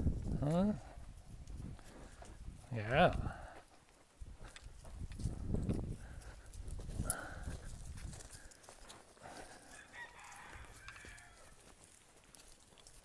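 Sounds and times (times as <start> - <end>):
cow hooves on leafy ground: 0.0 - 13.0
footsteps on dry leaves: 3.4 - 13.0.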